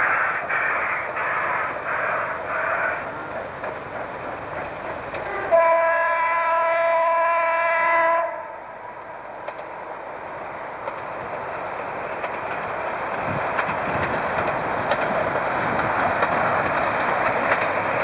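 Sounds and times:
train running noise: 0:00.0 - 0:18.0
train horn blast: 0:05.2 - 0:08.7.

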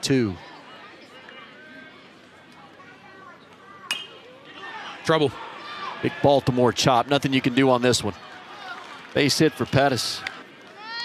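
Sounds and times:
metal bat striking ball: 0:03.9 - 0:04.2.

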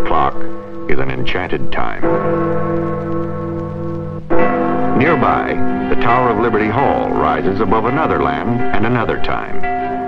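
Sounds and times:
deep clock tower bell stroke: 0:00.0 - 0:10.0.

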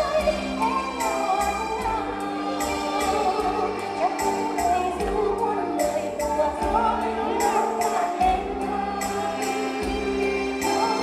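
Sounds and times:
instrumental backing track: 0:00.0 - 0:11.0
women singing in chorus: 0:00.0 - 0:11.0.

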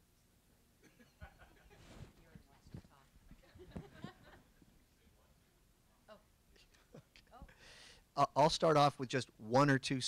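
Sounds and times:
quiet chuckling: 0:00.8 - 0:02.2, 0:03.3 - 0:04.8.

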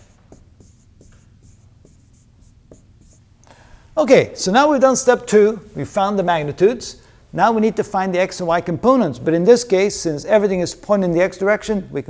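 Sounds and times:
marker writing on whiteboard: 0:00.0 - 0:03.2.

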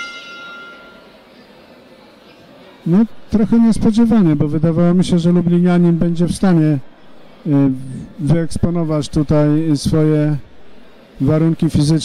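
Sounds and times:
boxing ring bell: 0:00.0 - 0:01.3.

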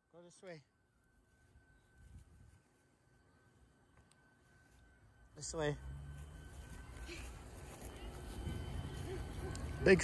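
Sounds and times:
faint high-pitched tone: 0:00.0 - 0:10.0
wind rumbling on microphone: 0:07.8 - 0:10.0.

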